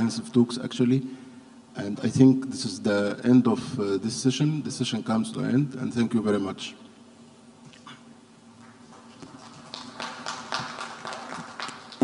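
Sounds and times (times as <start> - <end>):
steady low hum: 0.0 - 12.0
people clapping: 8.6 - 12.0.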